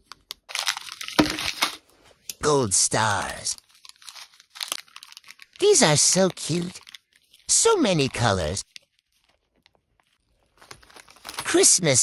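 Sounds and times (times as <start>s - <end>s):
plastic bag crinkling: 0.1s - 2.0s, 3.0s - 11.6s.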